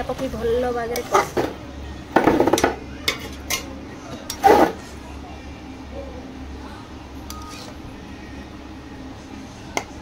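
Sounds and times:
ladle scraping metal pots: 0:00.9 - 0:01.6, 0:04.3 - 0:04.8.

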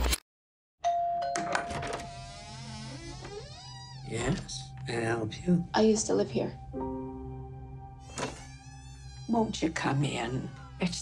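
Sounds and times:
doorbell ringing high tone: 0:00.8 - 0:02.2.

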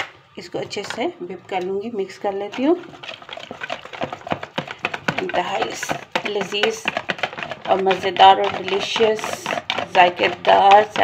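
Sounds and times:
utensil beating mixture in bowl: 0:00.4 - 0:11.0.

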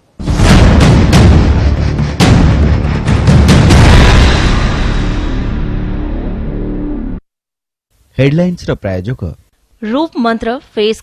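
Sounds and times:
booming percussive hits: 0:00.1 - 0:07.2
news title music: 0:00.2 - 0:07.2.

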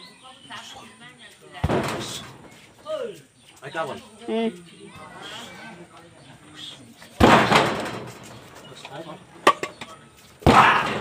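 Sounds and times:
kick landing smack: 0:07.2 - 0:08.1, 0:10.4 - 0:11.0.

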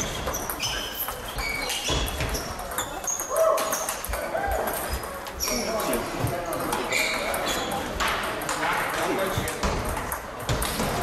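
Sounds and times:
table tennis balls clicking: 0:00.0 - 0:11.0
voices in a hall: 0:00.0 - 0:11.0.

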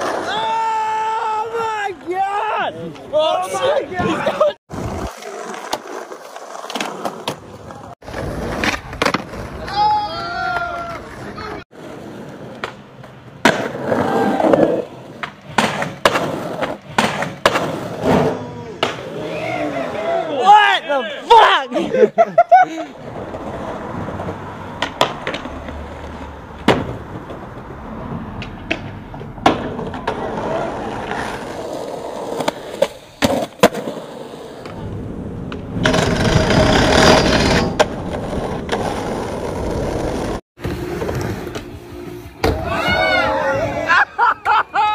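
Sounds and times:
skateboard wheels rolling: 0:00.0 - 0:20.7, 0:22.6 - 0:44.0
skateboard clacking: 0:12.2 - 0:19.1, 0:23.2 - 0:27.7, 0:28.3 - 0:41.8.

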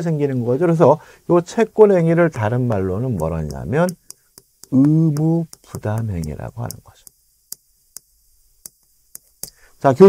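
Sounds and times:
chalk tapping on chalkboard: 0:02.3 - 0:09.6.

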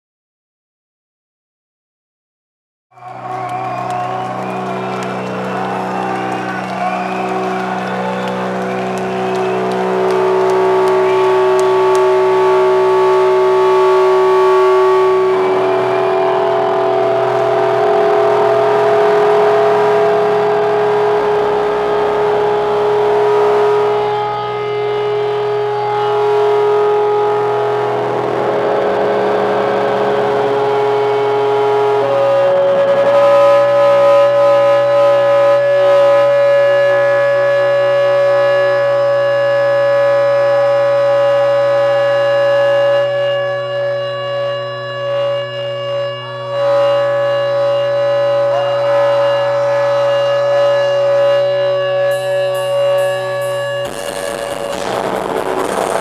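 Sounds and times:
electric guitar feedback drone: 0:03.0 - 0:56.0.

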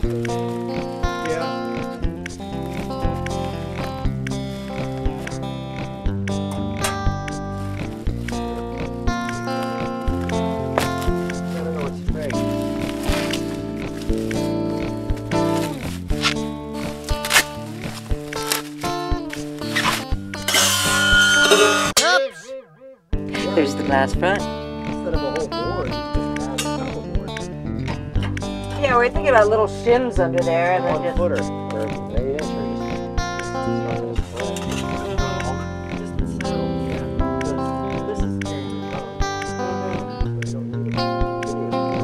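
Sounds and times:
held chords: 0:00.0 - 0:42.0
sharp percussive hits: 0:19.1 - 0:22.6.

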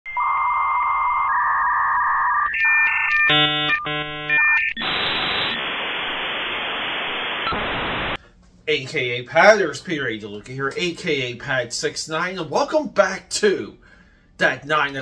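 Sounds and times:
electronic beeping tones: 0:00.1 - 0:05.6
harsh buzzing tone: 0:00.1 - 0:08.2
static hiss: 0:04.8 - 0:08.2.

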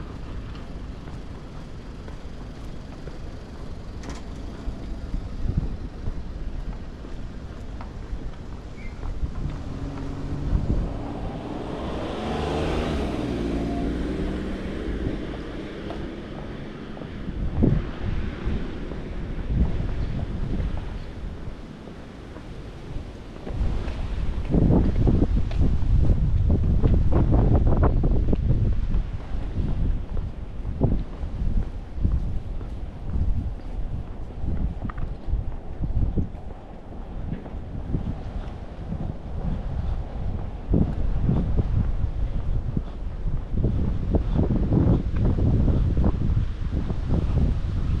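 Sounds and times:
wind rumbling on microphone: 0:00.0 - 0:48.0
vehicle engine passing: 0:09.1 - 0:21.0.

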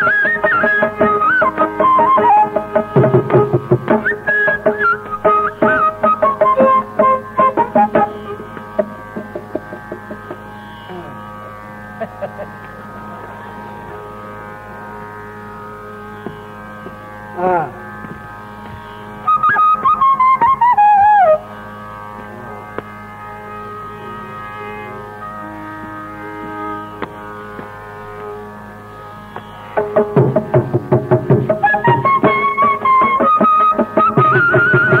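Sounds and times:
bamboo flute: 0:00.0 - 0:10.1, 0:18.8 - 0:22.8, 0:29.7 - 0:35.0
tambura drone: 0:00.0 - 0:35.0
drum stroke: 0:29.8 - 0:32.4.

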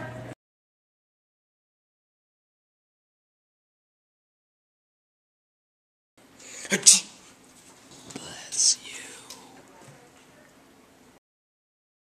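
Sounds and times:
person whispering: 0:08.0 - 0:09.8.

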